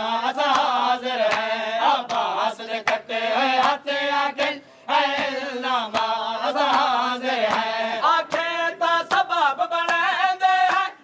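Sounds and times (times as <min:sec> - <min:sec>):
man singing a lament: 0:00.0 - 0:11.0.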